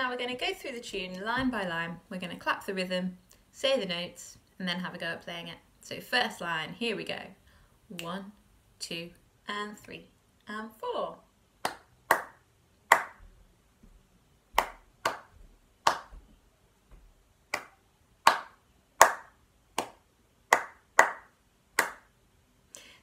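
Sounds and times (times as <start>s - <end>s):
hands clapping a rhythm: 11.6s - 13.2s, 14.6s - 16.2s, 17.5s - 22.1s.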